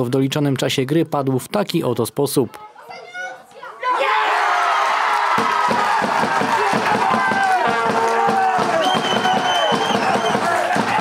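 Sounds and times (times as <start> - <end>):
crowd cheering and shouting: 2.7 - 11.0.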